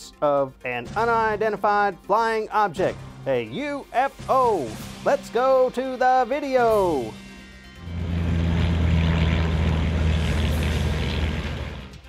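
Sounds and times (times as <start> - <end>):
propeller airplane flying overhead: 7.8 - 12.0.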